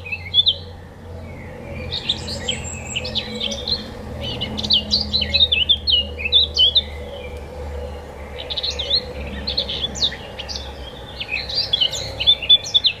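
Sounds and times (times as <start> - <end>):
songbird chirping: 0.0 - 13.0.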